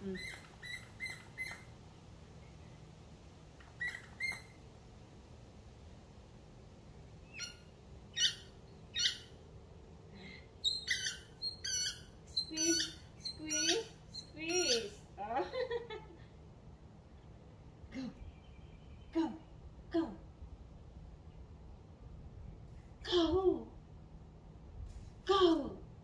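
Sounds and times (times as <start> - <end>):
squeaky dog toy squeaks: 10.7 - 14.9.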